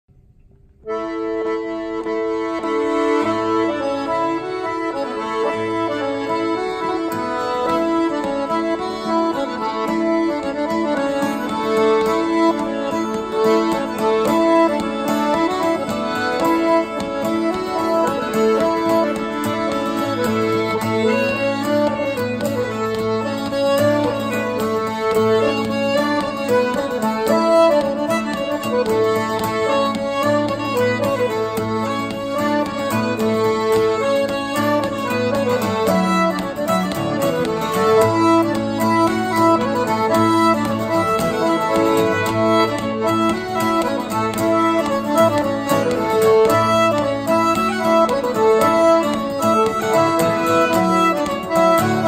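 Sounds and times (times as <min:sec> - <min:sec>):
fiddle: 0:00.8 - 0:52.0
piano accordion: 0:00.8 - 0:52.0
strummed acoustic guitar: 0:05.2 - 0:52.0.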